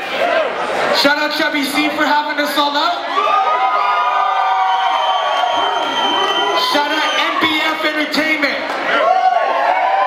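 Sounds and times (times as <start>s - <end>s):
crowd cheering and whooping: 3.0s - 8.0s, 8.7s - 10.0s.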